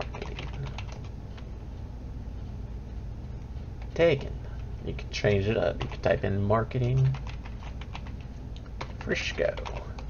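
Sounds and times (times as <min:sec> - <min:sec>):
keyboard keys clicking: 0:00.0 - 0:01.1, 0:05.7 - 0:10.0.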